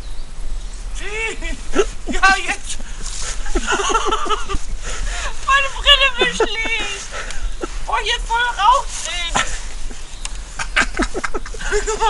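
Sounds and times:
people chattering: 1.0s - 9.7s.

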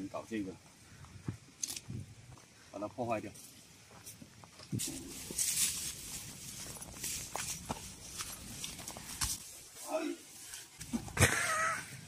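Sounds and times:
footsteps through rustling grass: 3.3s - 11.0s.

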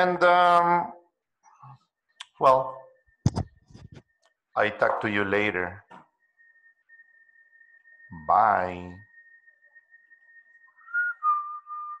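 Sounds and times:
faint high-pitched whine: 0.0s - 12.0s
person whistling: 10.7s - 12.0s.

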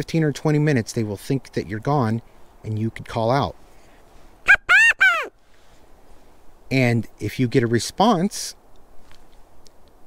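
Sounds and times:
hand-blown quail call: 4.4s - 5.4s.

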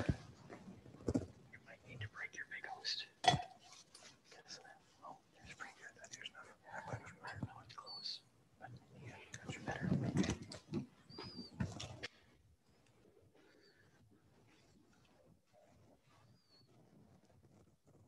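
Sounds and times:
whispered speech: 0.0s - 0.3s, 1.5s - 3.2s, 4.2s - 10.6s.

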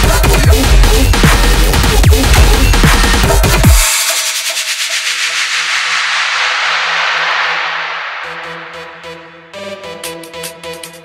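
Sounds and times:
white-noise sweep: 3.9s - 9.9s.

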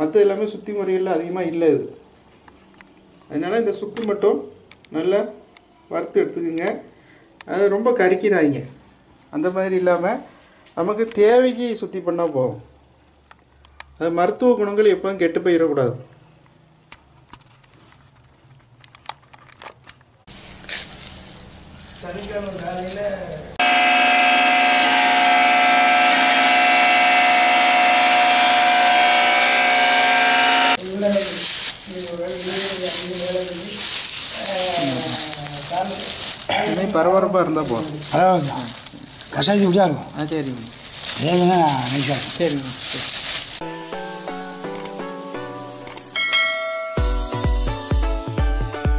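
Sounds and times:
electric grinding mill whining: 23.6s - 30.8s
bell-like notification chime: 46.2s - 47.4s
electronic music with heavy bass: 47.0s - 48.9s.

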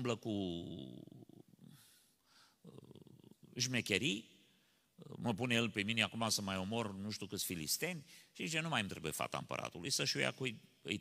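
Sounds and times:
man speaking: 0.0s - 1.7s, 2.7s - 4.4s, 5.0s - 11.0s.

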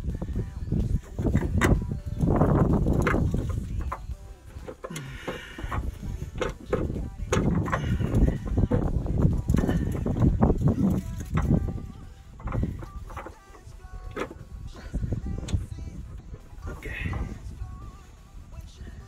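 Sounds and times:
phone handling rumble: 0.4s - 17.9s
plastic tube knocking and scraping: 0.8s - 11.8s, 12.4s - 14.8s.

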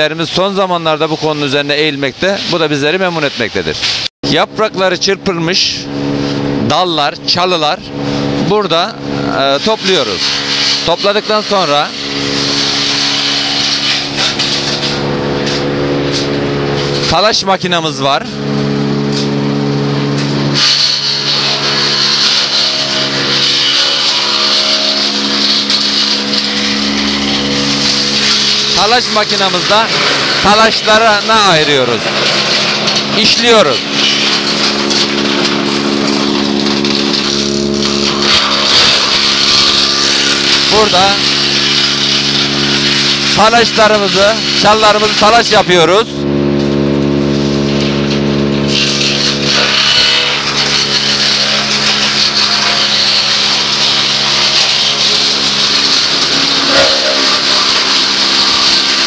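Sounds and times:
branch chipper running: 0.0s - 59.0s.

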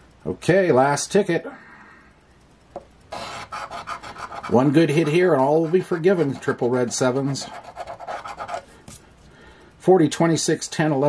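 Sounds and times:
man reading aloud: 0.2s - 1.6s, 4.4s - 7.6s, 9.8s - 11.0s.

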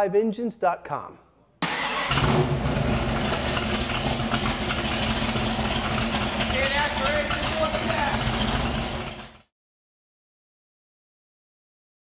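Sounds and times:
car engine idling: 1.6s - 9.4s.

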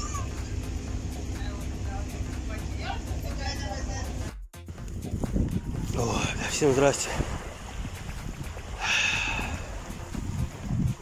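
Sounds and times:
boat engine rumbling: 0.0s - 11.0s.

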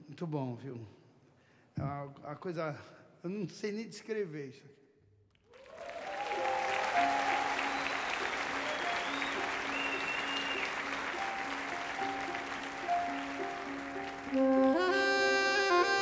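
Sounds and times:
audience applauding: 5.4s - 16.0s
piano playing slow held notes: 6.2s - 16.0s.

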